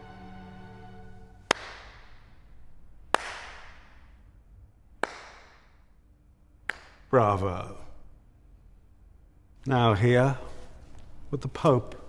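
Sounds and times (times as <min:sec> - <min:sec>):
held music chord: 0:00.0 - 0:01.5
slow handclaps with echo: 0:01.4 - 0:02.4, 0:03.0 - 0:04.2, 0:05.0 - 0:05.9, 0:06.6 - 0:07.1.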